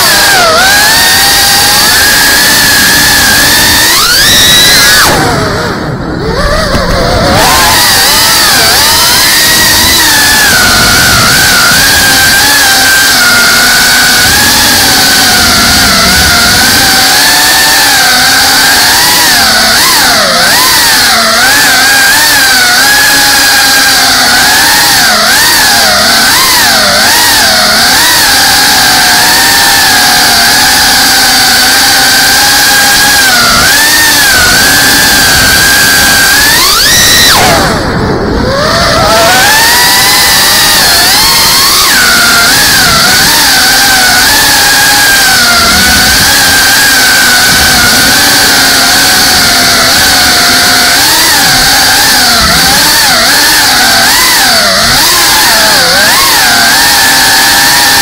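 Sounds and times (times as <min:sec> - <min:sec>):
drone motors whining: 0:00.0 - 0:58.0.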